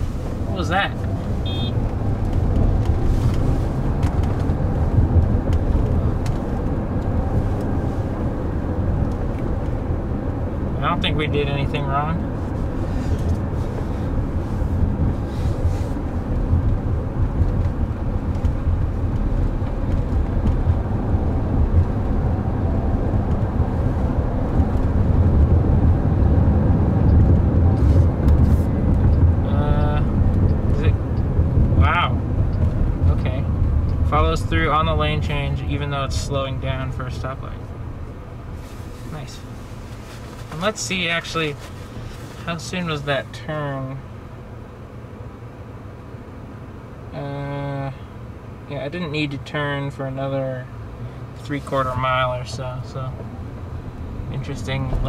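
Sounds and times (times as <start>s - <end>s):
low rumble in car cabin: 0.0s - 55.0s
tyre and road noise: 0.0s - 55.0s.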